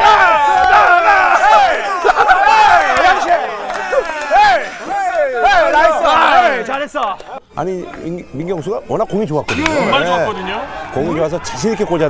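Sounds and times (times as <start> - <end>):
men shouting and cheering: 0.0 - 8.2, 9.4 - 12.0.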